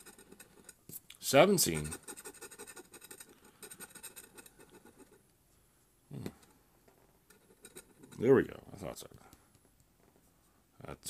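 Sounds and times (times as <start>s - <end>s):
scratcher rubbing lottery ticket: 0.0s - 0.8s, 1.5s - 5.2s.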